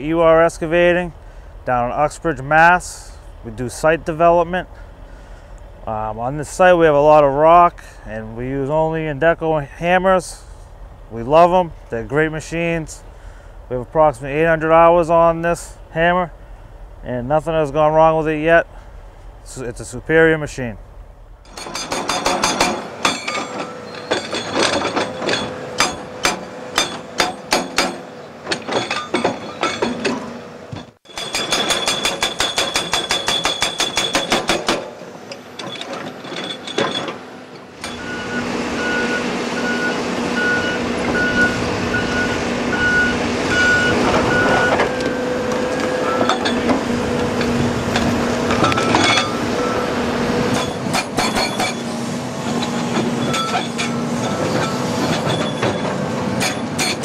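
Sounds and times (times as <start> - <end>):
excavator engine: 20.8 - 57.0
hydraulic hammer pounding rock: 21.5 - 35.0, 50.5 - 57.0
reversing alarm beeping: 37.8 - 46.6, 48.6 - 50.0, 53.2 - 55.8.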